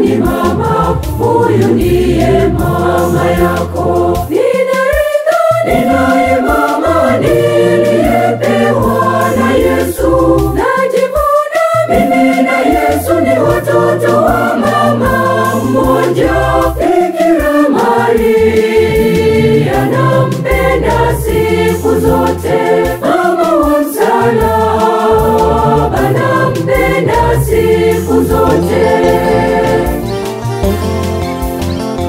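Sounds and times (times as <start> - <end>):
organ with sustained bass notes: 0.0 - 4.3, 5.7 - 10.6, 12.5 - 16.9, 18.2 - 23.0, 24.4 - 32.0
mixed choir singing in harmony: 0.0 - 30.3.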